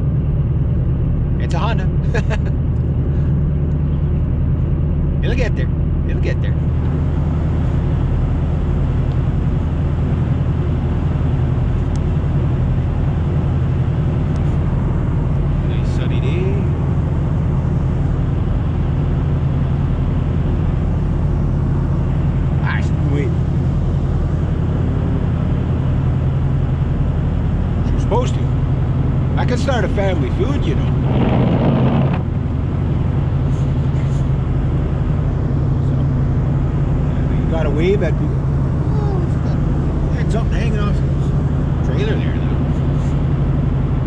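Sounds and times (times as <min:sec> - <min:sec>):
car engine and tyre drone: 0:00.0 - 0:44.0.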